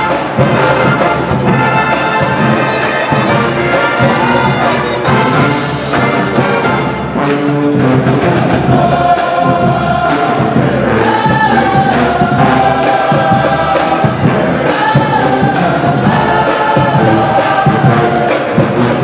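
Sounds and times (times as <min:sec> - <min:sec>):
marching band playing: 0:00.0 - 0:19.0.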